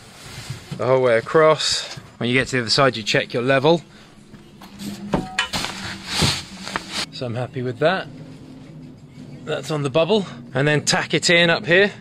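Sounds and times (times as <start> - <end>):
membrane rustling and crinkling: 4.4 - 7.1.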